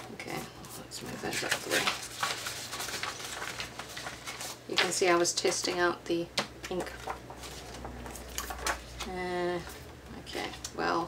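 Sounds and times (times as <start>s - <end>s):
paper rustling across mat: 0.6s - 5.0s.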